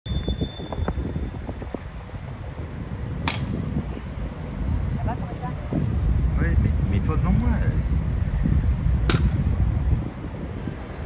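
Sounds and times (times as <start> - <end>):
steady low rumble: 0.1 - 11.0.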